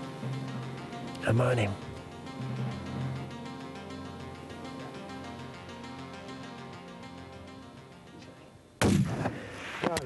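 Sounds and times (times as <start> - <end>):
rifle shot with echo: 8.8 - 10.0.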